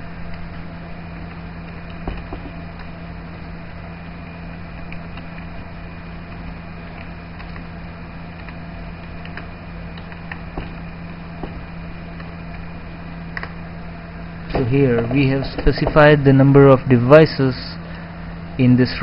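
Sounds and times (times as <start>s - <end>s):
electrical hum and hiss: 0.0s - 19.0s
computer keys clicking: 6.3s - 7.7s, 8.3s - 10.8s.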